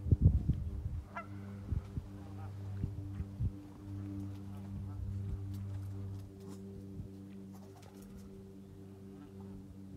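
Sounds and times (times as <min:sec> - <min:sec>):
steady low hum: 0:00.0 - 0:09.9
distant geese honking: 0:01.0 - 0:09.9.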